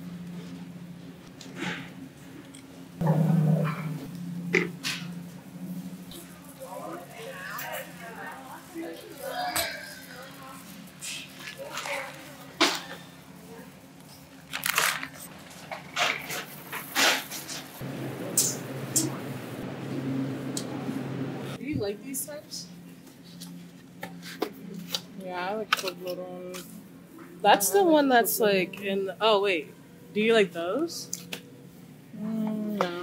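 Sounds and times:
steady low hum: 0.0 - 33.0
faint voices: 6.0 - 14.3.

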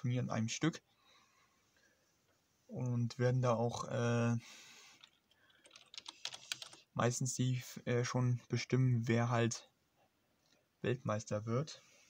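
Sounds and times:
computer keyboard typing: 5.0 - 6.8.

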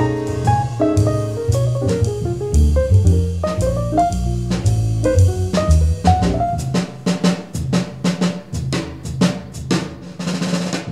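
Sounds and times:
jazz band music: 0.0 - 8.8
drum kit snare and tom hits: 0.0 - 10.9.

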